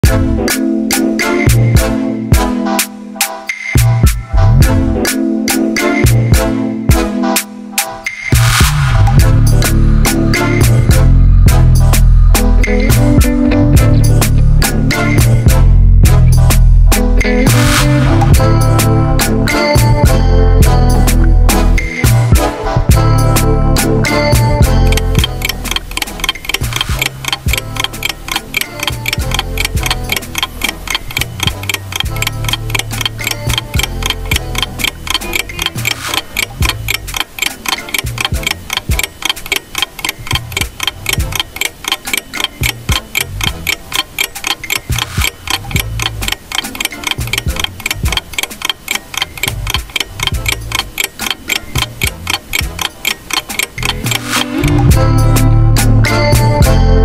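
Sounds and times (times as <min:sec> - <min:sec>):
fast clock ticking: 0:00.0 - 0:02.5, 0:03.8 - 0:06.4, 0:08.1 - 0:55.6.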